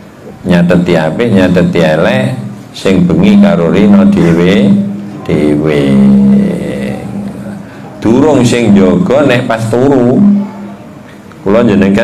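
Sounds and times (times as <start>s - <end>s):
steady low hum: 0.0s - 12.0s
man's voice through a microphone: 0.4s - 10.8s, 11.4s - 12.0s.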